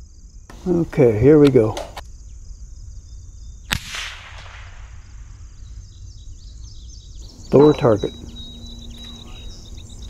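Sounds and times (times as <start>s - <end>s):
rifle shot with echo: 3.7s - 5.3s.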